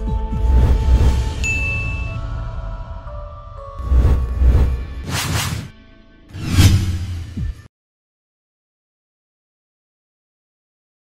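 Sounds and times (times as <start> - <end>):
music: 0.0 - 7.7
whoosh sound effects: 3.8 - 5.7, 6.3 - 7.7.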